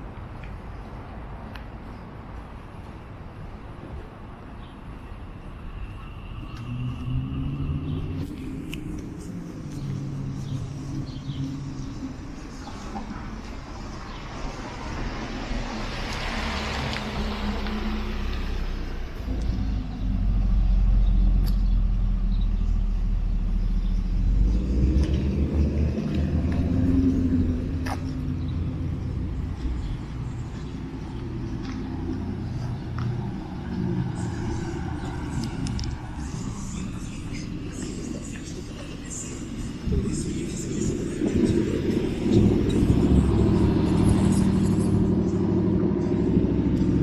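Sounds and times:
cars passing on street: 0.0s - 47.0s
heavy low rumble: 16.9s - 47.0s
car tyre noise: 23.4s - 47.0s.

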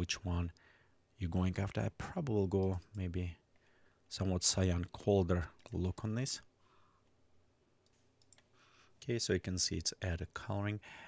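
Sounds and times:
faint computer mouse clicks: 7.8s - 8.5s.

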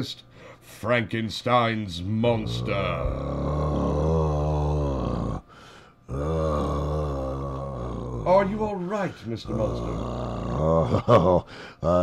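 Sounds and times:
man groaning in deep voice: 2.2s - 5.5s, 6.1s - 12.0s.

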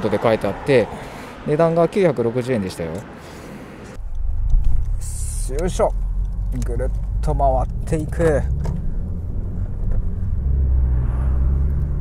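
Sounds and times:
car engine and road noise: 0.0s - 12.0s.

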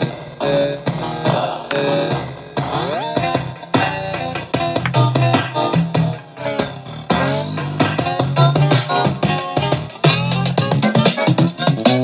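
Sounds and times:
electronic toy beat and music loop: 0.0s - 12.0s.

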